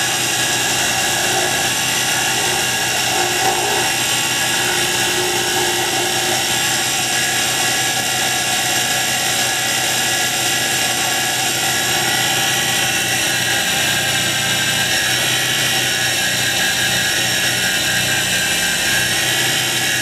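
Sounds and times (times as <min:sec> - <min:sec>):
hand sanding wood: 0:00.0 - 0:07.2
lathe motor whining: 0:00.0 - 0:20.0.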